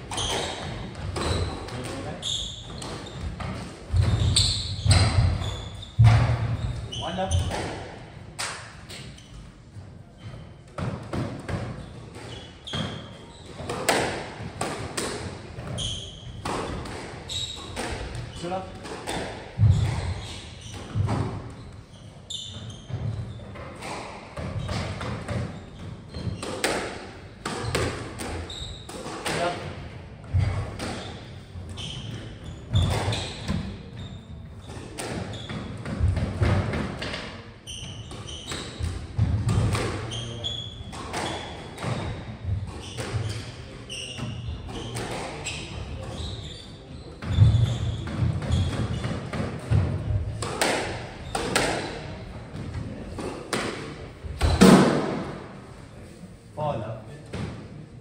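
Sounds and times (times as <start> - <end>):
shoes squeaking on wooden floor: 0.0 - 7.8, 8.9 - 29.6, 30.3 - 52.0
squash ball struck by racquets: 0.0 - 9.2, 10.6 - 21.6, 22.6 - 46.3, 47.2 - 55.5.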